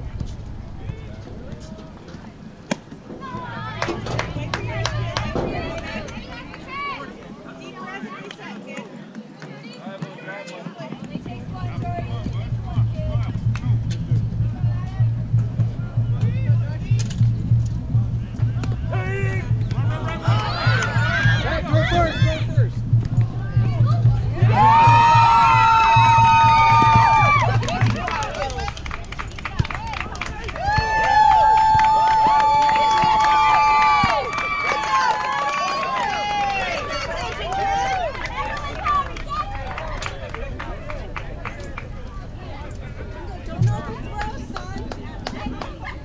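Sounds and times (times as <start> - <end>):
children calling out and cheering: 30.5 - 40.1.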